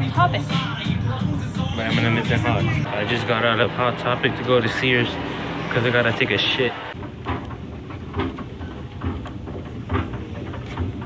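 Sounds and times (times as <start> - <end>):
escalator rumbling: 0.0 - 11.0
footsteps on escalator steps: 1.6 - 11.0.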